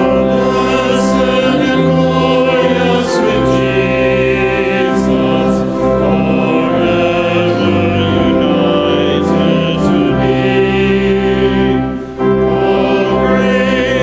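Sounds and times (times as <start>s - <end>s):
congregation singing a hymn: 0.0s - 14.0s
organ sustained chords: 0.0s - 14.0s.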